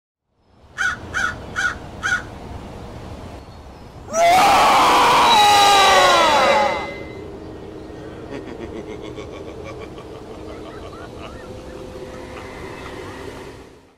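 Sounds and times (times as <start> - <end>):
crow caws: 0.8 - 2.3
loud drawn-out scream: 4.1 - 7.2.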